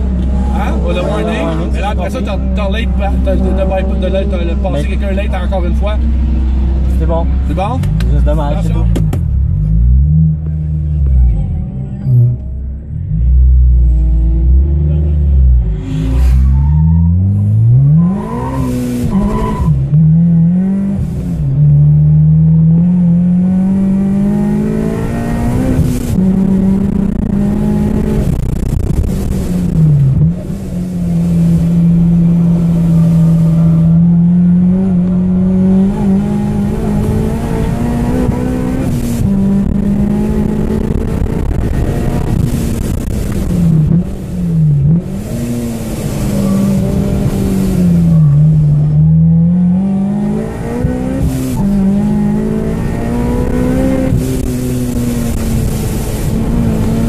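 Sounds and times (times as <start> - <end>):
car engine revving hard: 13.0 - 57.0.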